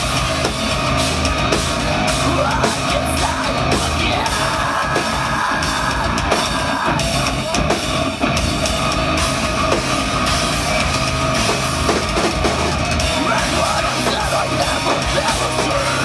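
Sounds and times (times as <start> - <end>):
distorted electric guitars: 0.0 - 16.0
drum kit: 0.0 - 16.0.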